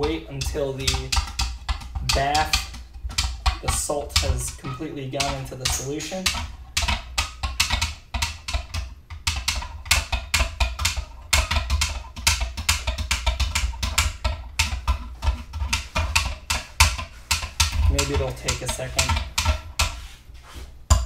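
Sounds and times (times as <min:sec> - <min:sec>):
stirrer knocking against tank: 0:00.0 - 0:20.0.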